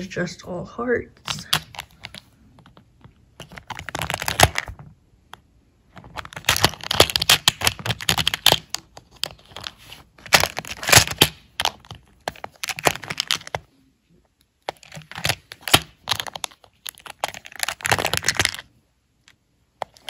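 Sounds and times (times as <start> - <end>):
plastic lids clicking and rattling: 3.4 - 4.9, 5.9 - 13.7, 14.6 - 18.7.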